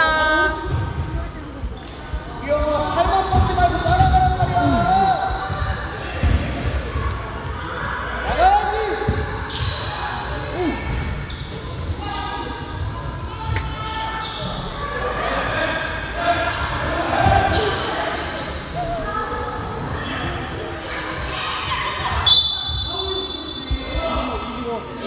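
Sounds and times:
sneakers squeaking: 0.2s - 24.5s.

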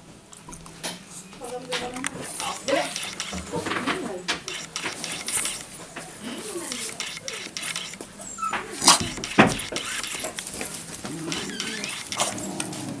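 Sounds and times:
dog whimpering: 8.2s - 9.0s, 11.1s - 12.4s.

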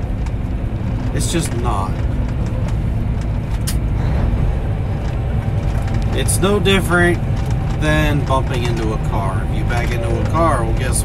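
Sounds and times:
truck engine and road rumble: 0.0s - 11.0s.

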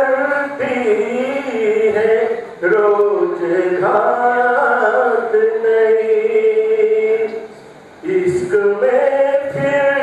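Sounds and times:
man chanting poetry: 0.0s - 10.0s.

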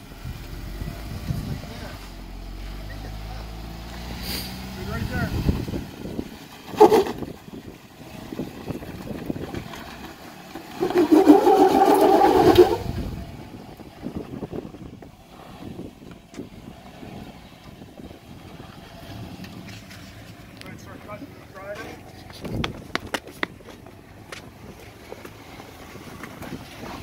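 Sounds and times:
engine working under load: 0.0s - 27.0s.

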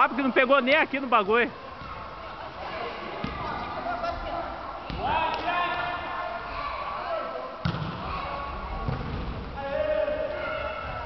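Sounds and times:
thump: 7.6s - 8.0s, 8.8s - 9.5s.

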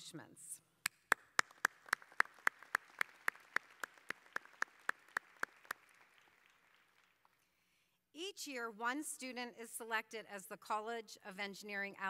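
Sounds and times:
loud evenly spaced claps: 0.8s - 7.6s
audience applause: 1.1s - 7.4s.

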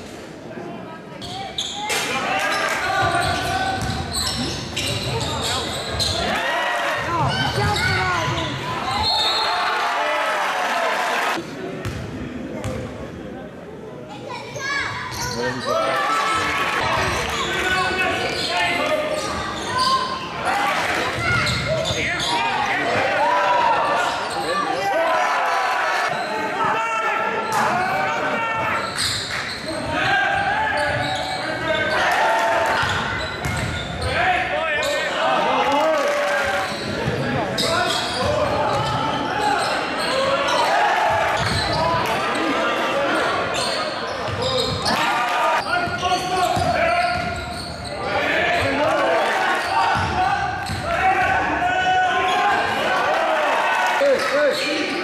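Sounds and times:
voices and shouts: 1.2s - 11.4s, 14.3s - 55.0s.

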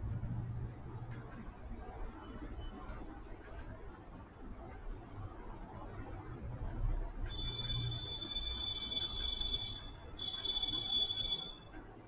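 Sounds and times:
high-pitched beep: 7.3s - 11.6s.

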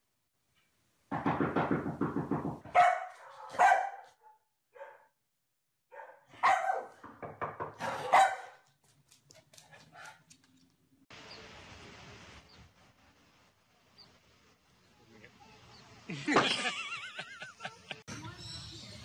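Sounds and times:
dog barking: 2.7s - 5.2s, 5.9s - 7.0s, 7.8s - 8.7s.

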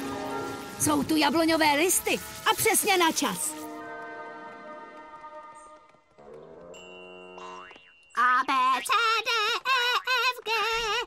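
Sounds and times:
girl singing: 8.2s - 11.0s.

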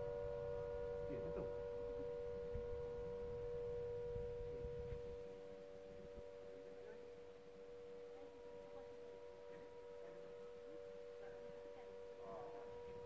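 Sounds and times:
siren steady tone: 0.0s - 13.0s.

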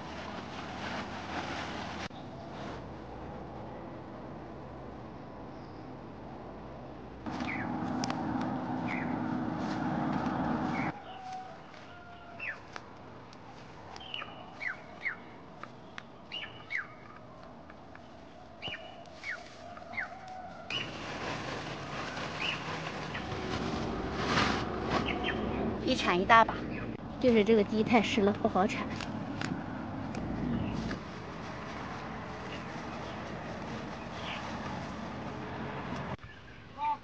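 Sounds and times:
outdoor background noise: 0.0s - 37.0s
small birds chirping: 7.4s - 7.7s, 8.8s - 9.2s, 13.9s - 17.4s, 18.0s - 20.9s, 33.9s - 34.8s.

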